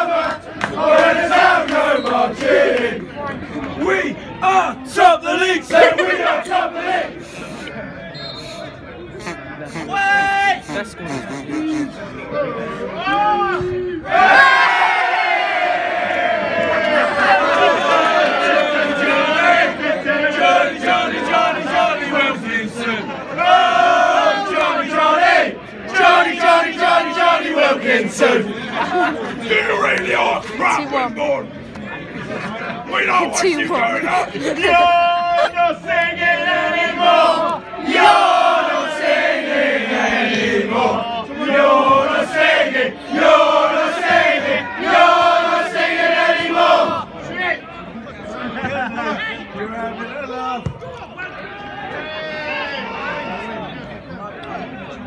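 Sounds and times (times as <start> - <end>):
football crowd chanting: 0.0 - 7.2, 14.0 - 31.1, 32.9 - 47.6.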